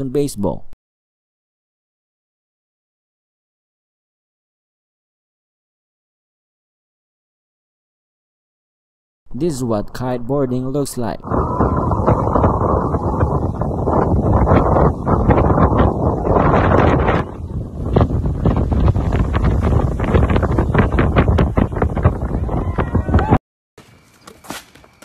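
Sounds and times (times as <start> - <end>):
wind buffeting microphone: 11.1 - 23.4.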